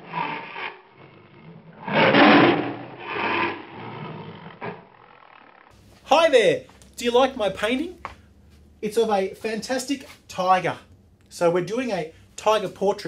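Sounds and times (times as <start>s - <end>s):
tiger roaring and growling: 0.0s - 5.7s.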